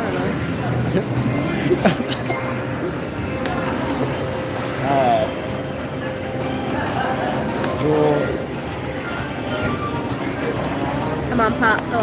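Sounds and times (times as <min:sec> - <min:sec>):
slot machine electronic chimes: 0:01.1 - 0:11.3
machine noise: 0:01.1 - 0:11.5.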